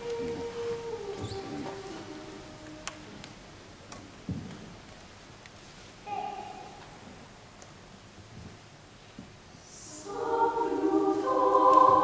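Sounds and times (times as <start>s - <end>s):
choir singing held chord: 9.7s - 12.0s.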